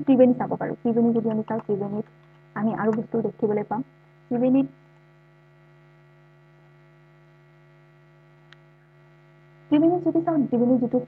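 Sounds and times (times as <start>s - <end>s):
faint mains hum: 0.0s - 11.0s
computer mouse click: 1.2s - 3.0s.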